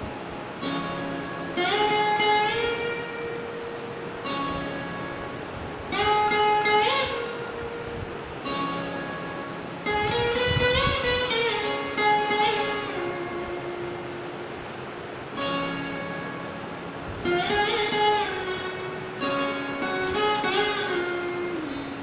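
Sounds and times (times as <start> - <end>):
slide guitar slow melody: 0.0 - 22.0.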